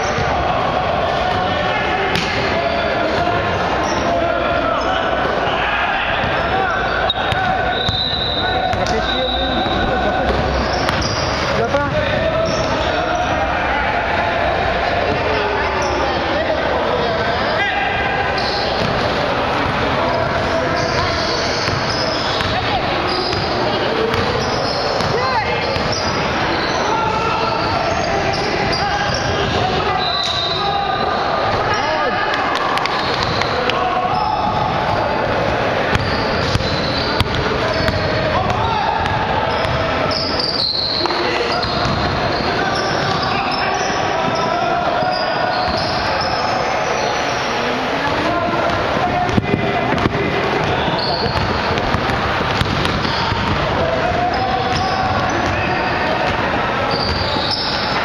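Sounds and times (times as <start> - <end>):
players shouting: 0.0 - 58.0
basketball bouncing on hardwood: 35.9 - 39.8, 41.6 - 42.1, 48.7 - 53.8.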